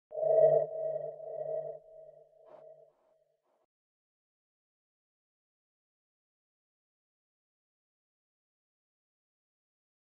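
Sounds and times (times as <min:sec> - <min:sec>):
sustained multi-pitch tone: 0:00.1 - 0:02.8.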